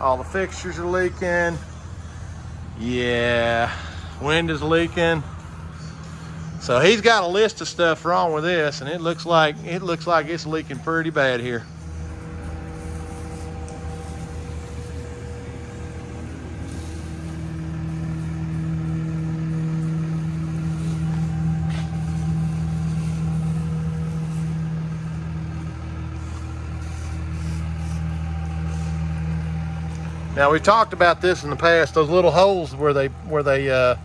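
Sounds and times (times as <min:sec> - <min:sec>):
machine blower humming: 0:00.0 - 0:34.0.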